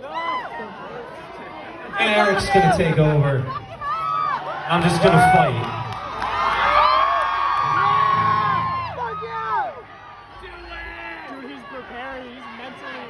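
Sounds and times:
concert audience cheering: 0.0s - 13.0s.

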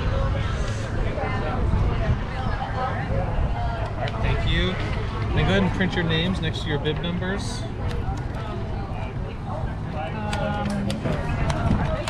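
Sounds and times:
people talking indistinctly: 0.0s - 12.0s
steady low rumble: 0.0s - 12.0s.

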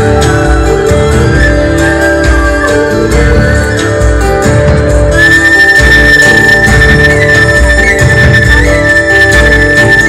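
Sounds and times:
live rock band music: 0.0s - 10.0s
high held note: 5.2s - 10.0s.

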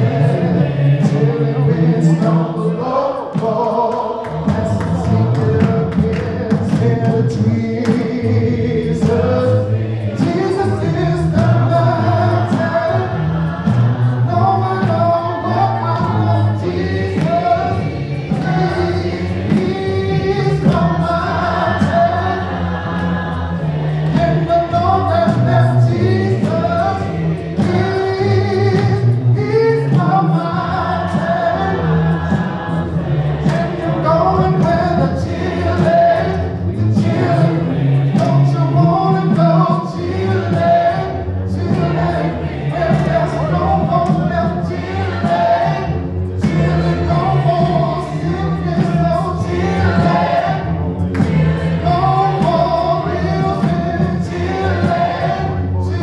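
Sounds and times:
man singing into a microphone: 0.0s - 13.5s, 14.2s - 22.5s, 24.1s - 32.2s, 33.5s - 45.9s, 46.5s - 50.5s, 51.8s - 56.0s
group singing gospel: 0.0s - 56.0s.

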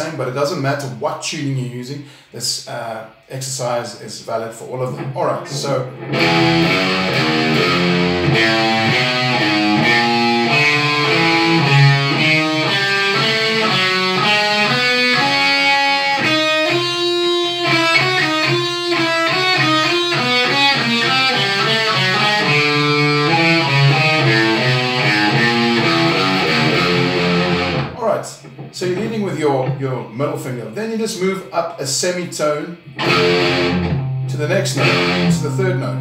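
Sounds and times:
electric guitar chromatic run: 4.8s - 28.8s, 32.8s - 36.0s.

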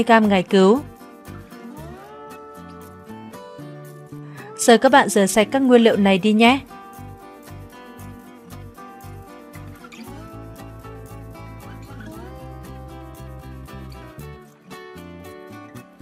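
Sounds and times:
instrumental music with steady beat: 0.0s - 4.7s, 5.7s - 16.0s.

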